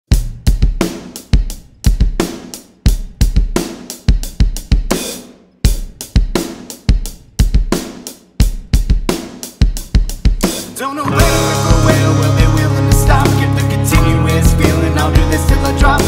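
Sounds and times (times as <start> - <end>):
rock drum kit playing: 0.1 - 16.0.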